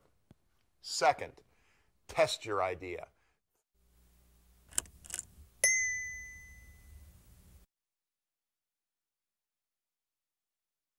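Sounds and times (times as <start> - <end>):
bright ding ringing: 5.6 - 7.0.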